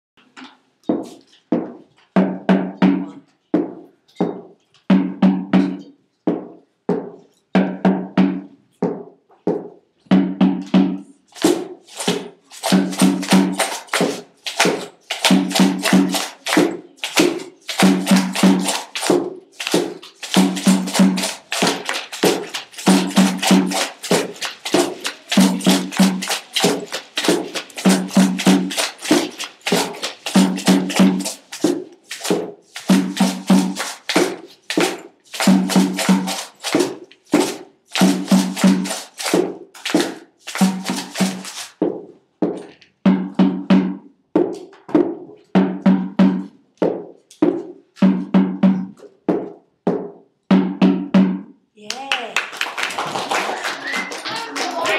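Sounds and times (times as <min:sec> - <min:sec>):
children playing hand percussion: 0:09.6 - 0:41.8, 0:51.8 - 0:54.9.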